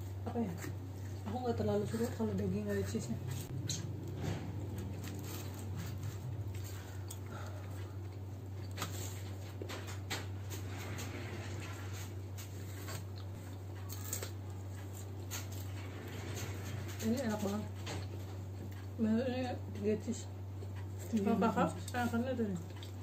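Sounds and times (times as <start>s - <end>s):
people chewing pizza: 0.0s - 23.0s
steady low hum: 0.0s - 23.0s.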